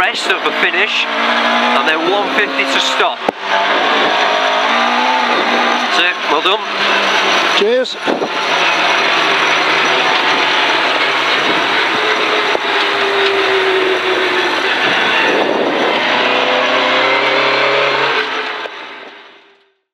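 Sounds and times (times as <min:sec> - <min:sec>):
rally car engine under load: 0:00.0 - 0:19.9.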